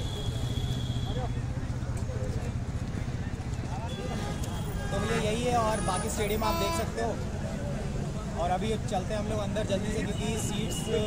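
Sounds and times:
faint crowd voices: 0.0 - 11.0.

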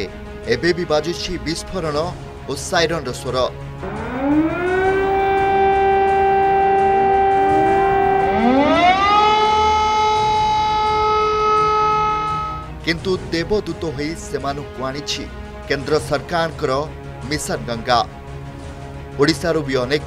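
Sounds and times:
air-raid siren wailing: 3.8 - 12.8.

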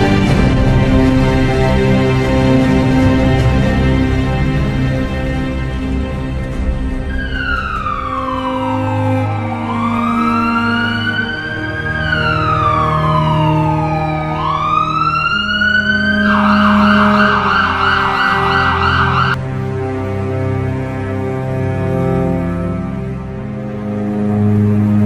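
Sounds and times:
ambulance siren wail and yelp: 7.0 - 19.4.

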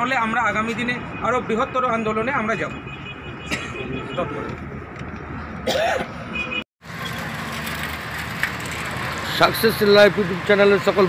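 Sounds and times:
city road traffic: 0.0 - 11.0.

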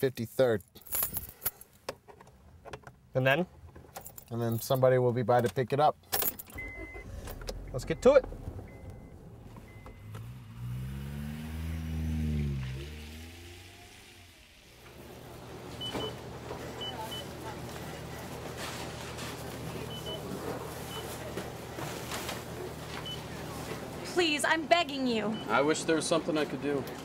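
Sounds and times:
car engine: 6.2 - 16.8.

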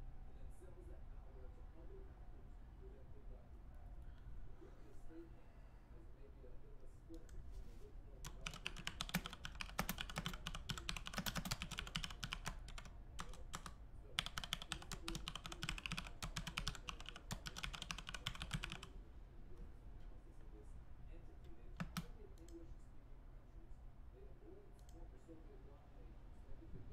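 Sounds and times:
fast typing on keyboard: 8.2 - 18.9, 21.7 - 22.2.

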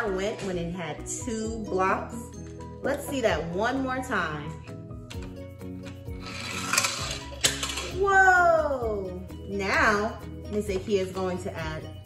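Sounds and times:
toy car wheels rasping on wood: 6.2 - 7.8.

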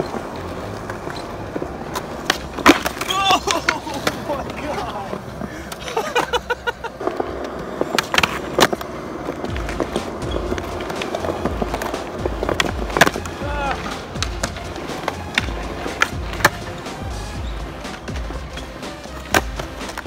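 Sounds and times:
skateboard clacking on ground: 0.0 - 20.0
skateboard wheels rolling on concrete: 0.0 - 20.0.

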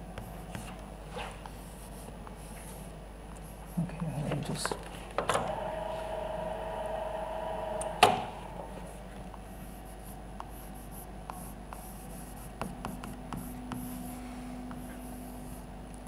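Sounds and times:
chalk tapping on blackboard: 9.3 - 14.1.

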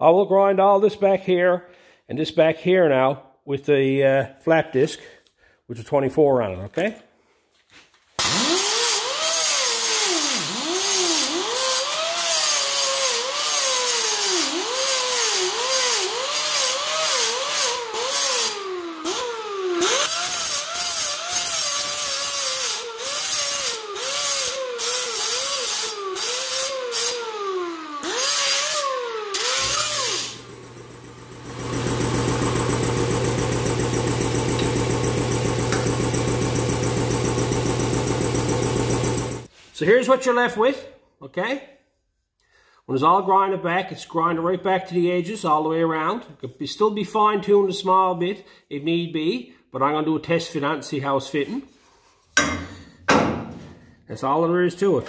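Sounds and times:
angle grinder grinding metal: 8.2 - 32.6, 33.5 - 37.4
steady running machine: 29.4 - 39.5.

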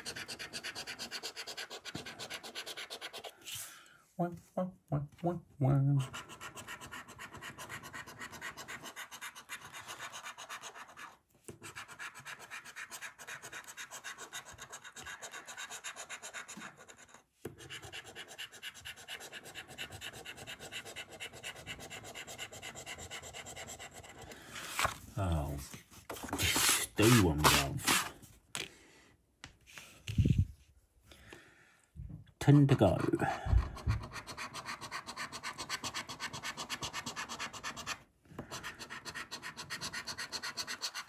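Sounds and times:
coin scratching a scratchcard: 0.0 - 3.3, 6.0 - 24.1, 26.4 - 28.1, 34.0 - 41.0.

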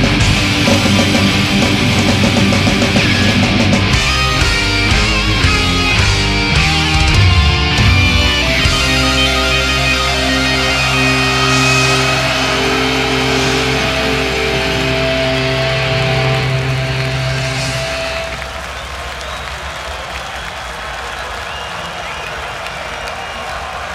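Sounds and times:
crowd cheering and applauding: 0.0 - 23.9
metal band sustained chord: 4.1 - 18.6.

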